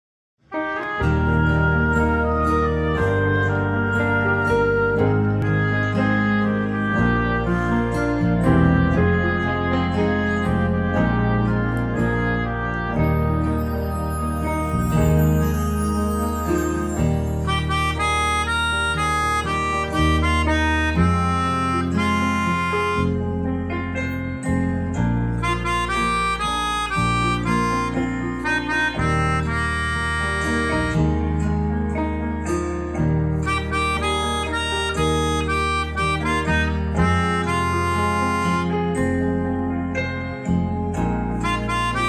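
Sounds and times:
melodica playing slow melody: 0.5 - 42.0
low bass notes: 0.7 - 42.0.

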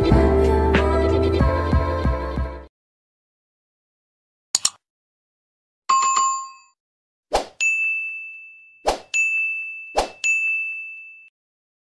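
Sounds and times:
bell-like ding: 7.6 - 11.3.

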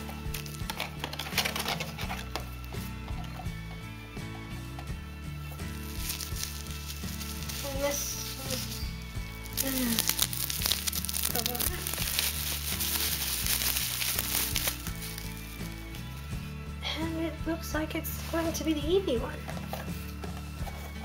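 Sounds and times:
bubble wrap crinkling: 0.0 - 3.4, 5.4 - 16.6.

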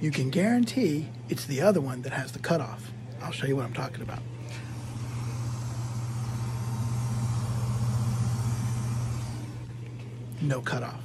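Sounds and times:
drinking fountain electric hum: 0.0 - 11.0
faint hiss: 4.6 - 9.7.

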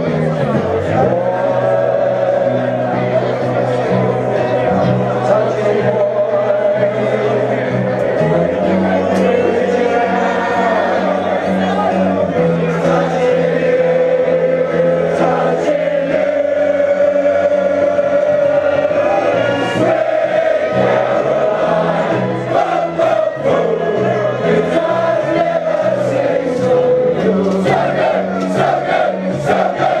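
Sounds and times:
crowd chanting in unison: 0.0 - 30.0.

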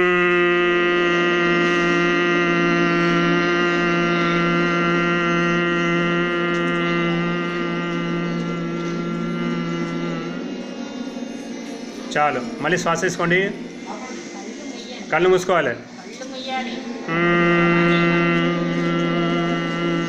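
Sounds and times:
children humming: 0.0 - 20.0.

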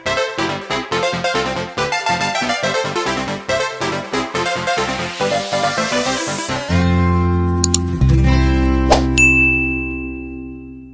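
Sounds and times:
sharp click: 7.6 - 7.9
high ding sound effect: 9.2 - 10.9.

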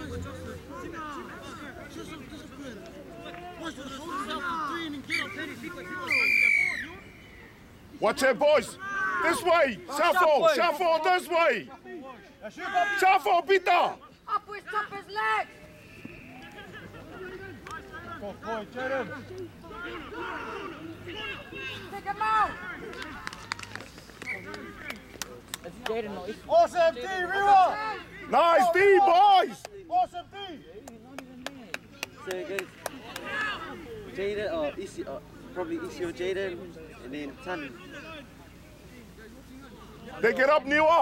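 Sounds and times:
faint shouting voices: 0.0 - 41.0
referee's whistle blast: 6.0 - 7.0.

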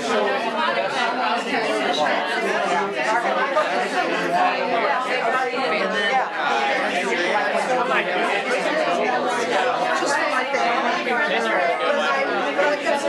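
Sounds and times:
many people talking: 0.0 - 13.0.

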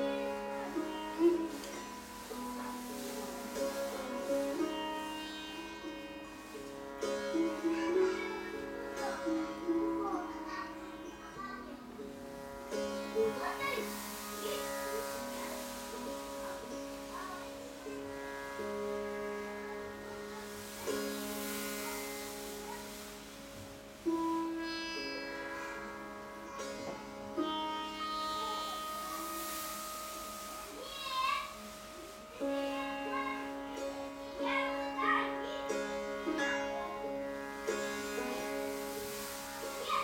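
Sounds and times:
slow long-necked string instrument music: 0.0 - 40.0.

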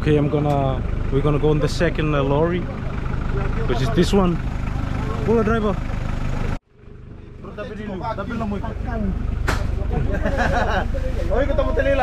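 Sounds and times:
lorry engine idling: 0.0 - 12.0
voices chattering: 0.0 - 12.0.

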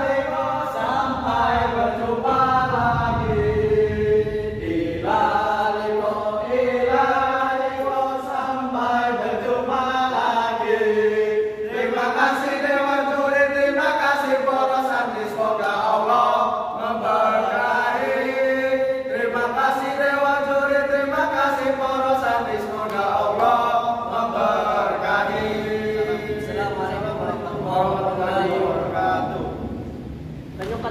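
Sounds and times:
men chanting devotional song: 0.0 - 30.9.

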